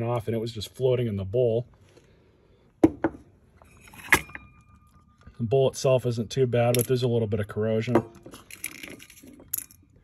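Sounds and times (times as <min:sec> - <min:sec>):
small metal parts clicking: 0:08.3 - 0:10.0.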